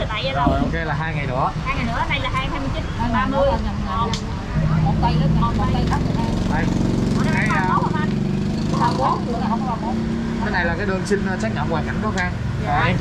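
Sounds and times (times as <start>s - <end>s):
vehicle engine rough drone: 0.0s - 13.0s.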